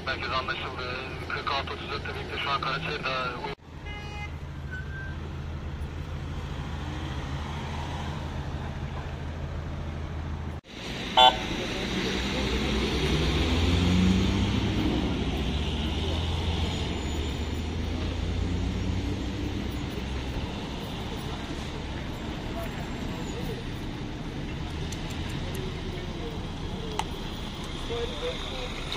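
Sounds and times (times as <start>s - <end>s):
vehicle engines idling: 0.0s - 28.9s
car horn toot: 3.8s - 5.0s, 11.2s - 11.5s.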